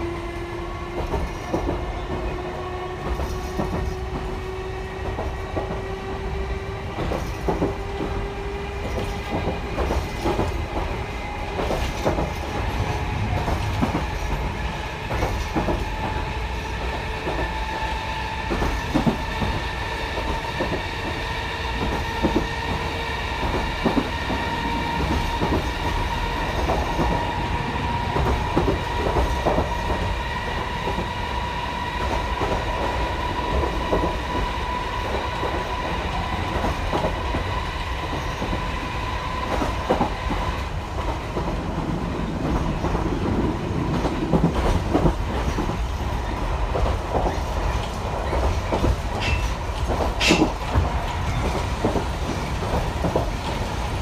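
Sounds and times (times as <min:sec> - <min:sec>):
wheels clacking over rail joints: 0:39.4 - 0:54.0.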